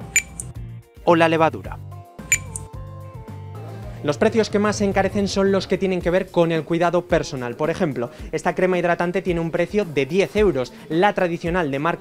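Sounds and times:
cash register ding: 0.0 - 0.5, 2.3 - 2.7
background music with held notes: 0.0 - 12.0.

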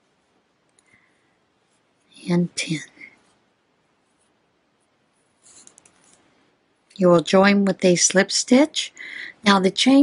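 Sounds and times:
yarn rustling on crochet hook: 1.6 - 7.0.

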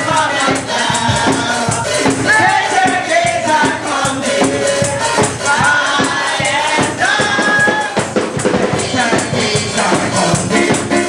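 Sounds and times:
congregation singing gospel song: 0.0 - 11.0
drums and percussion beat: 0.0 - 11.0.

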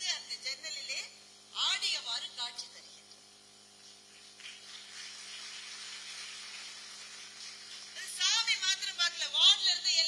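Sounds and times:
audience applauding: 4.4 - 8.0.

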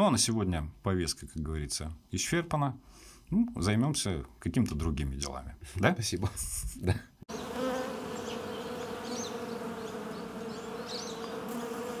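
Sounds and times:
bees buzzing: 7.3 - 12.0.

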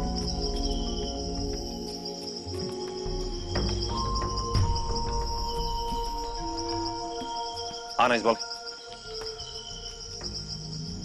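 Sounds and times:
crickets chirping: 0.0 - 11.0
low background music: 0.0 - 11.0.

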